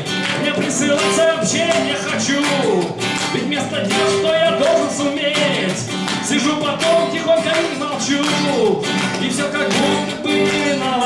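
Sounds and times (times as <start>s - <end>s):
acoustic guitar: 0.0s - 11.0s
man singing: 0.0s - 11.0s.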